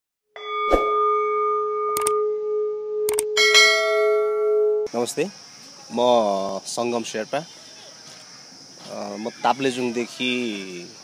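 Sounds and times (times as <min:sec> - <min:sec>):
synthetic bell chime: 0:00.4 - 0:02.4, 0:03.4 - 0:04.9
brighter chime: 0:00.4 - 0:04.9
sharp clicks: 0:02.0 - 0:02.2, 0:03.1 - 0:03.3.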